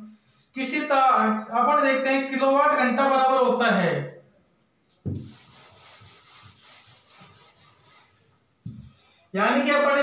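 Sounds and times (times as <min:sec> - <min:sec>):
knock: 0:05.0 - 0:05.4, 0:08.6 - 0:09.0
duster rubbing whiteboard: 0:05.0 - 0:08.9.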